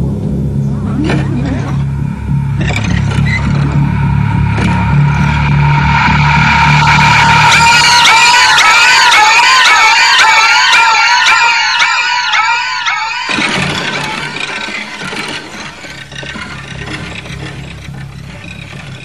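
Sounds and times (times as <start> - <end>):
shrill wavering wailing tone: 0.9 - 17.8.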